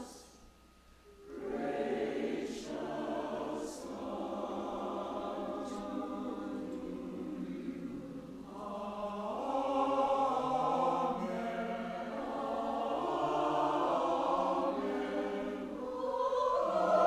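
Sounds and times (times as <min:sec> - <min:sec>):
choir singing slow choral piece: 0:00.0 - 0:00.4, 0:01.0 - 0:17.0.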